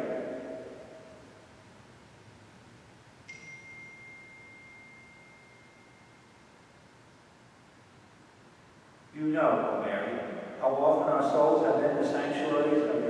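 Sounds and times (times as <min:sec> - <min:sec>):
reverberant voice: 0:00.0 - 0:01.4, 0:09.2 - 0:13.0
high metallic ring: 0:03.2 - 0:06.8.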